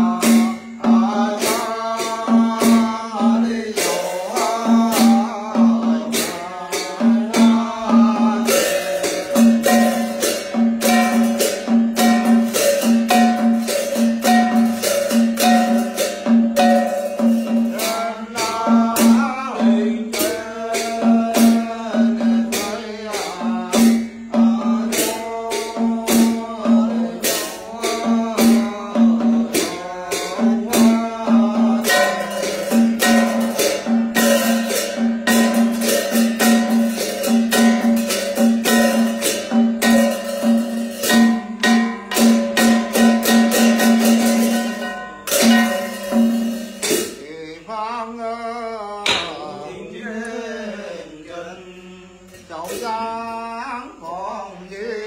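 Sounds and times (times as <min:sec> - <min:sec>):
man chanting: 0:00.0 - 0:46.4, 0:47.0 - 0:55.0.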